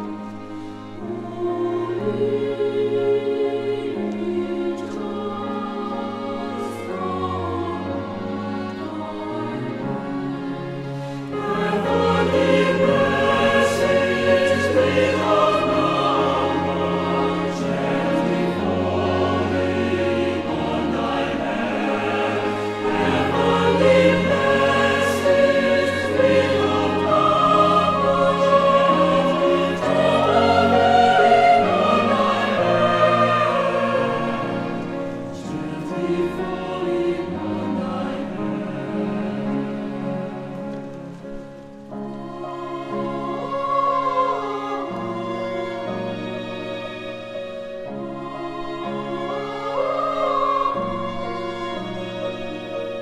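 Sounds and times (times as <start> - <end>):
mixed choir singing a hymn: 0.0 - 41.1, 41.9 - 53.0.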